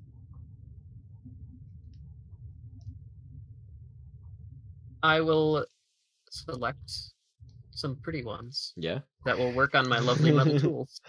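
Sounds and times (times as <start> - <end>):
faint room and microphone hum: 6.3 - 10.8.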